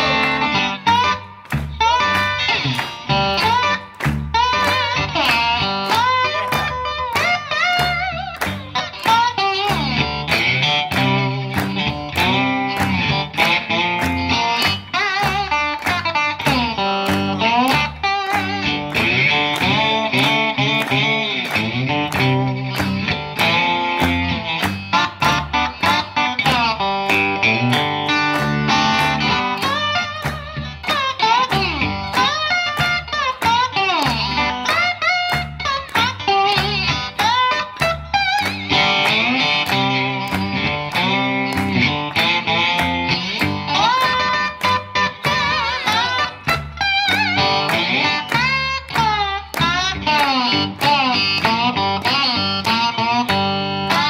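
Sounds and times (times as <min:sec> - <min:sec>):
electric guitar lead with bent notes: 0:00.0 - 0:54.0
hand claps: 0:00.0 - 0:54.0.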